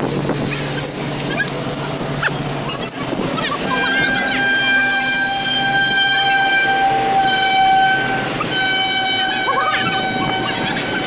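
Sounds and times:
voices shouting: 0:00.8 - 0:11.0
horn long high note: 0:03.0 - 0:11.0.

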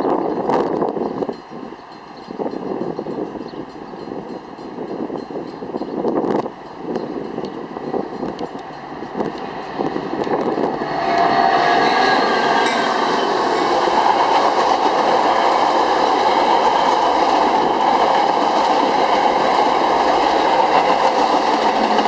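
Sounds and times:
train wheels clattering on rails: 0:00.0 - 0:22.0.

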